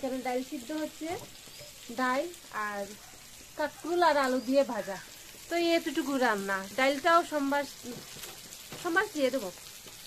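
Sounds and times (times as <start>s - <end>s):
vegetables frying in oil: 0.0s - 10.0s.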